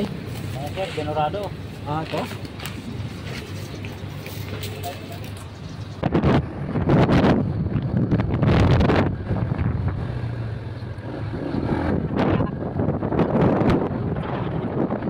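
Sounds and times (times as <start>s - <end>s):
motorcycle running and road noise: 0.0s - 15.0s
wind buffeting microphone: 0.0s - 15.0s.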